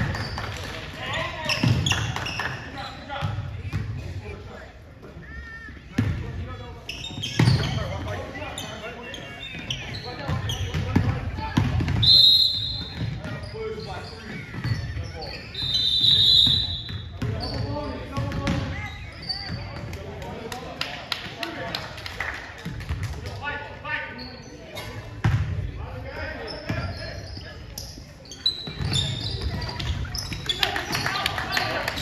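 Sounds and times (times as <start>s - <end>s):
referee's whistle: 12.0s - 13.1s, 14.8s - 17.5s.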